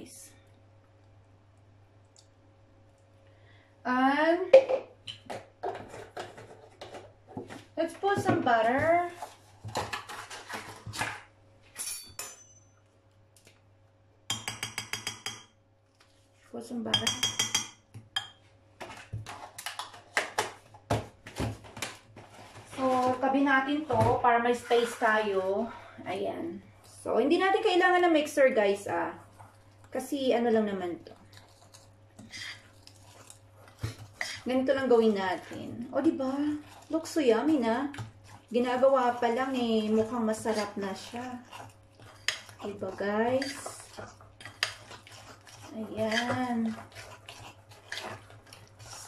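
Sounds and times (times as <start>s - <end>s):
fork scraping glass bowl: 31.2s - 34.6s, 36.2s - 49.0s.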